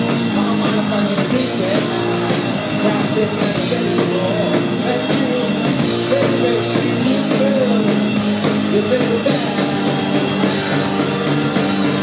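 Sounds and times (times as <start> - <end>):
drum kit beat: 0.0 - 12.0
keyboard chords: 0.0 - 12.0.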